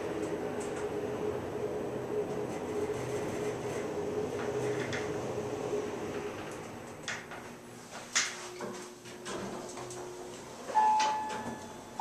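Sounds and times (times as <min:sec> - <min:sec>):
elevator humming: 0:00.0 - 0:12.0
faint elevator whine: 0:00.0 - 0:12.0
elevator chime: 0:09.7 - 0:12.0.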